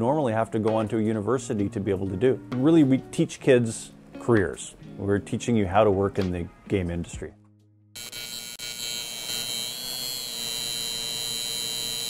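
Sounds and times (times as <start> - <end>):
neon sign electric buzzing: 8.0 - 12.0.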